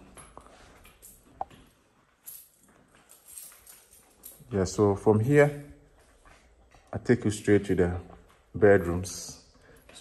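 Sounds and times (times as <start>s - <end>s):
faint footsteps on tiled floor: 0.0s - 10.0s.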